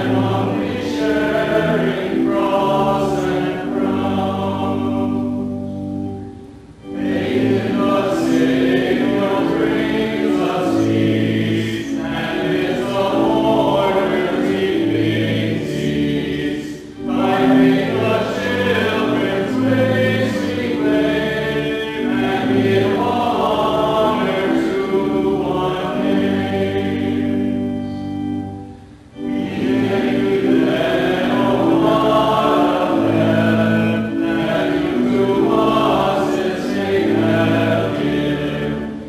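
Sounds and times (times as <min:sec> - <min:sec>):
sustained instrumental accompaniment: 0:00.0 - 0:39.0
voices singing a hymn: 0:00.0 - 0:39.0.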